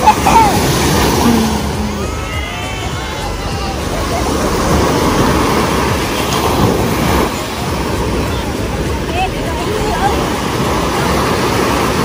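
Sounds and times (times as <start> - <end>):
ocean surf washing onto beach: 0.0 - 12.0.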